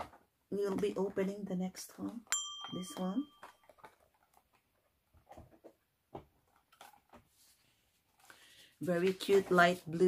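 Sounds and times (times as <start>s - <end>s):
cardboard boxes knocking and rustling: 3.0s - 7.3s.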